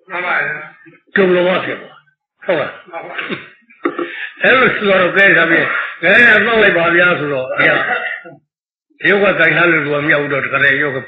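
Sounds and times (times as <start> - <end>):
man preaching: 4.3 - 8.1, 9.0 - 11.0.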